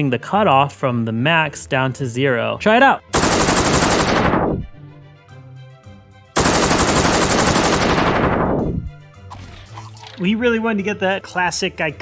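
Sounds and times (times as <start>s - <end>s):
machine-gun fire muffled: 3.2s - 4.8s, 6.4s - 8.8s.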